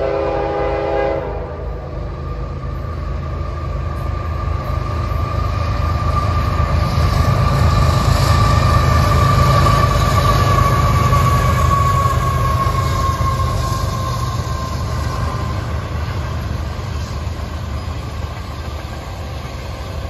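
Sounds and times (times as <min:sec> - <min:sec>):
freight train engine rumble: 0:00.0 - 0:20.0.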